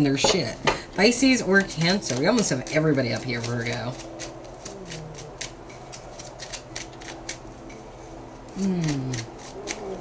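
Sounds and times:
cards being shuffled: 2.1 - 7.5, 8.4 - 10.0.

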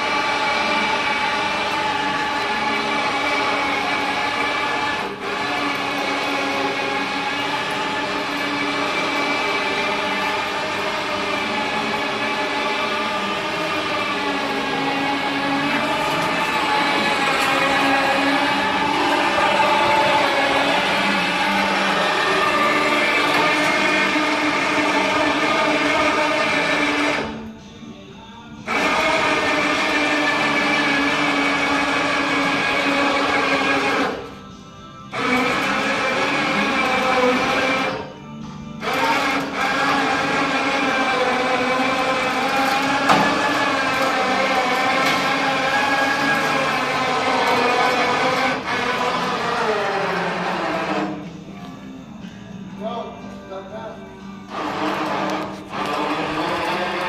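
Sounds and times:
electric motor whining: 0.0 - 53.3, 54.0 - 57.0.

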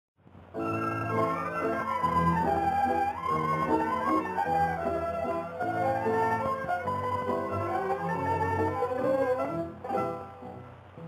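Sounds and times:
violins with plucked strings: 0.6 - 11.0.

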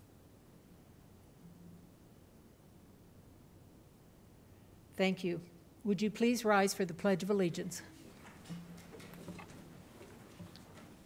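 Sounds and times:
low room hum: 0.0 - 11.0
chairs clicking and shuffling: 8.0 - 11.0.

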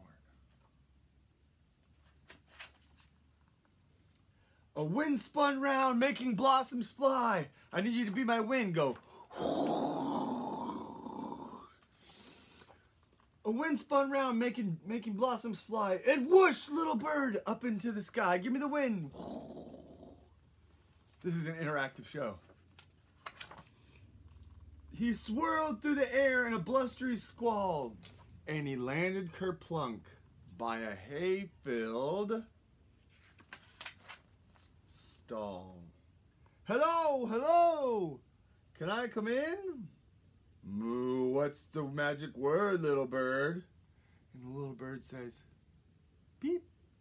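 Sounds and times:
book page turning: 2.0 - 3.2, 22.4 - 23.8, 33.0 - 34.8
short paper sounds: 2.0 - 3.2
man blowing hissing breath: 12.0 - 12.8.

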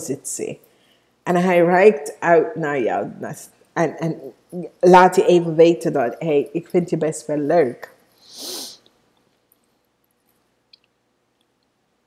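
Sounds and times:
woman breathing: 0.6 - 1.2, 8.2 - 8.9.

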